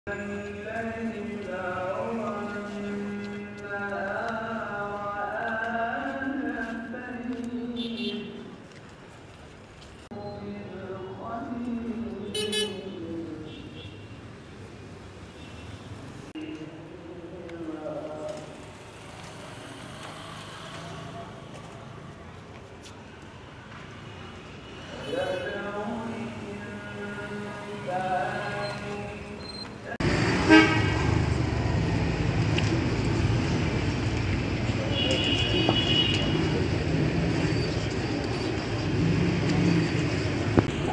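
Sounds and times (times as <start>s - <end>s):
street traffic noise: 0.0s - 40.9s
car horn toot: 30.4s - 31.1s, 34.9s - 36.4s.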